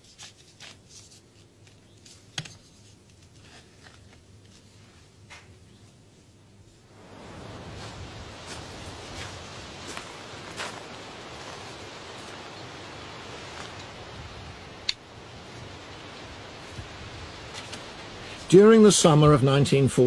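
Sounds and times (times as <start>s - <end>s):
faint rustles: 0.0s - 18.5s
steady hiss: 4.2s - 20.0s.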